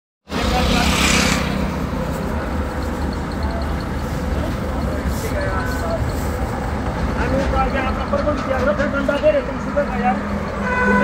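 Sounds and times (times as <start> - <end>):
vehicle engines rumbling: 0.2 - 11.0
vehicle passing by: 0.3 - 4.8.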